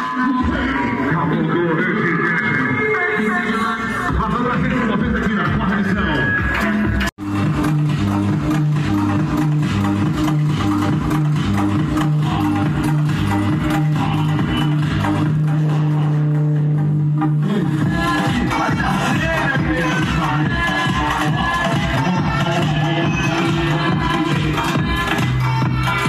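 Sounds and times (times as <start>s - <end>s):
loud music with deep bass: 0.0s - 26.0s.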